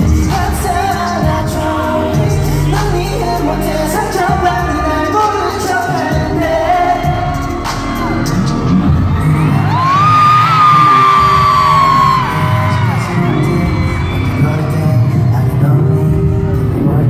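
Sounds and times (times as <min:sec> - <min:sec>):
live pop song with singing: 0:00.0 - 0:17.0.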